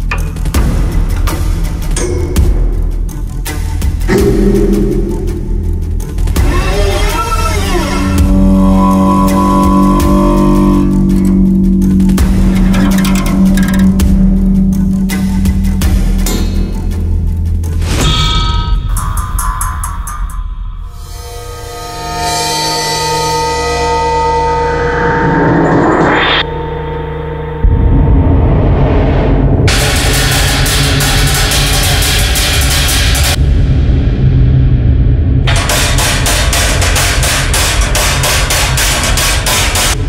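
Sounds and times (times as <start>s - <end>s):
low bass background music: 0.0s - 40.0s
metal rod striking metal box: 11.9s - 14.3s.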